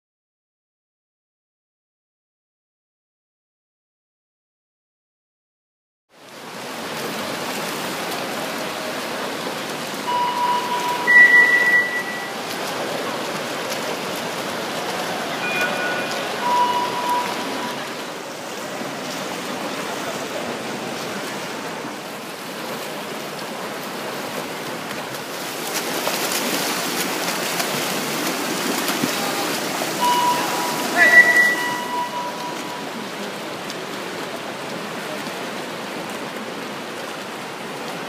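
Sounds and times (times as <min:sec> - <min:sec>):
swimmers splashing water: 0:06.3 - 0:38.0
higher louder tone: 0:10.1 - 0:12.4, 0:30.0 - 0:33.2
steady high tone: 0:10.1 - 0:12.5, 0:15.4 - 0:18.0, 0:29.9 - 0:33.2.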